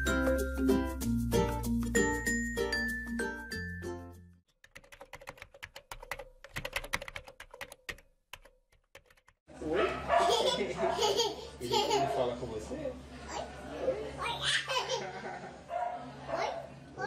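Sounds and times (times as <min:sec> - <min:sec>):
quick irregular clicks: 0:04.7 - 0:09.4
adult talking: 0:09.5 - 0:14.2
toddler laughing loudly: 0:10.2 - 0:12.2, 0:14.3 - 0:15.5.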